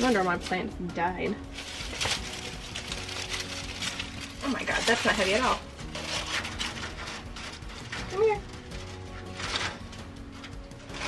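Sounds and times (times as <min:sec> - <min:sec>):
stick rustling in dry debris: 0:00.0 - 0:11.0.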